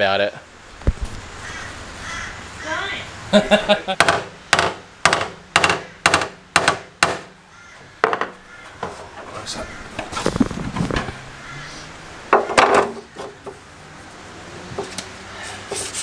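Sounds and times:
hammer tapping on metal panel: 4.0s - 7.3s
scraping and handling: 8.0s - 11.2s.

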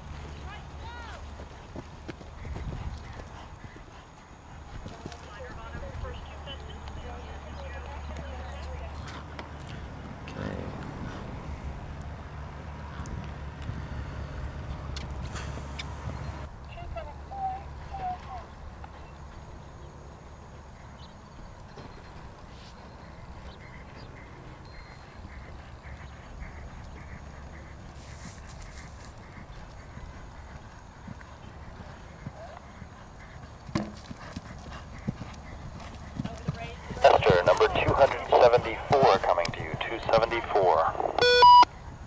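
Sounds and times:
horse hoofbeats on dry ground: 0.0s - 10.2s, 23.5s - 40.3s
wind rumble on microphone: 2.2s - 3.8s.

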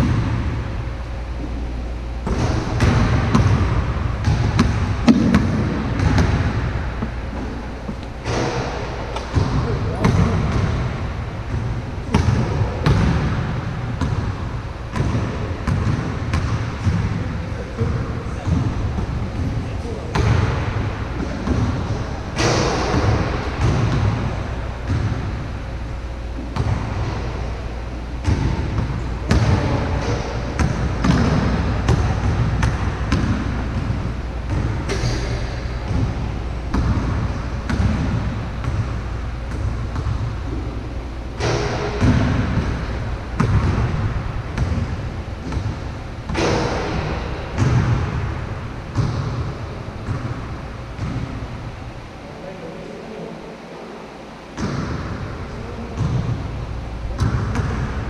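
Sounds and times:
basketball dribbling on a court: 0.0s - 0.7s, 2.2s - 25.5s, 26.4s - 27.6s, 28.2s - 51.5s, 54.6s - 58.0s.

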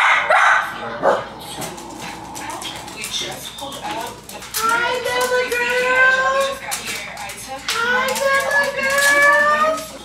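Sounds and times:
dog barking: 0.0s - 1.3s.

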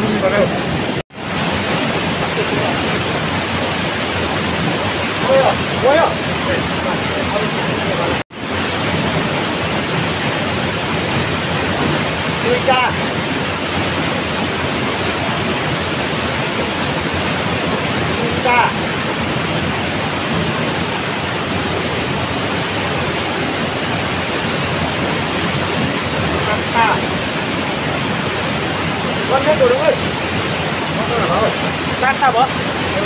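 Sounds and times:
stream water flowing: 0.0s - 33.0s.

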